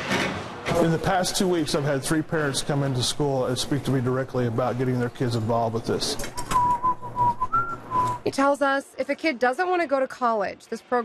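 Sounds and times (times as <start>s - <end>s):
thin whistling tone: 6.5s - 8.2s.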